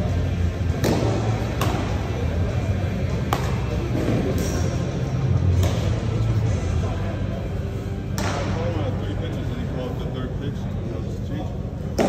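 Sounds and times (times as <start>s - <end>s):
baseball impact smack: 0.7s - 2.0s, 3.3s - 4.6s, 5.6s - 6.0s, 8.1s - 8.6s.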